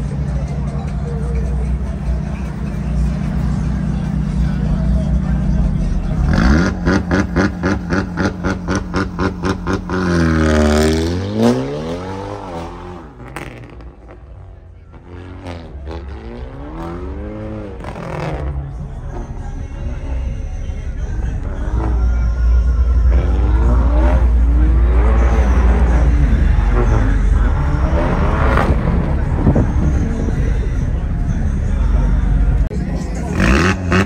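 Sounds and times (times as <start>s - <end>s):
car engine revving and accelerating: 1.4s - 20.5s, 21.3s - 34.0s.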